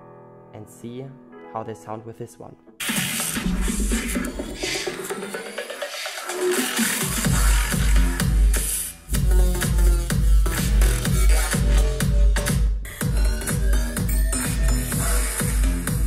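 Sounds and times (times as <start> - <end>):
bass-heavy electronic music: 2.8 - 16.0.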